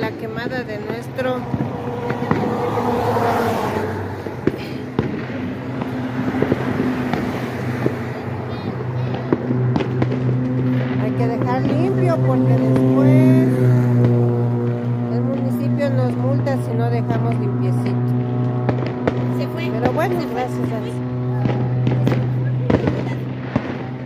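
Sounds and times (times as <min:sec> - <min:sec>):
background voices: 0:00.0 - 0:05.0
fire popping and crackling: 0:00.0 - 0:15.6.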